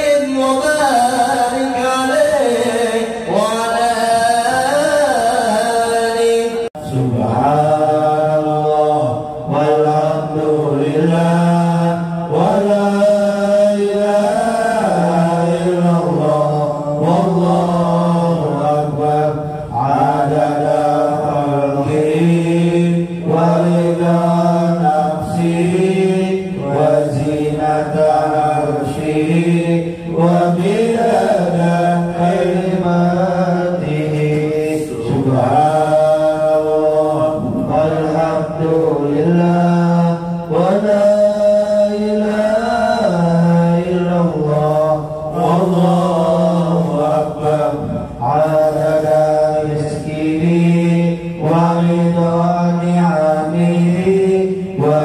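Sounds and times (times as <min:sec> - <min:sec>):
men chanting devotional phrases: 0:00.0 - 0:55.0.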